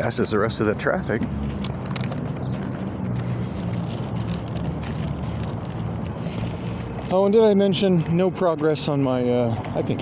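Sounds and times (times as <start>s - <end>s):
road noise: 0.0s - 10.0s
traffic engine hum: 0.0s - 10.0s.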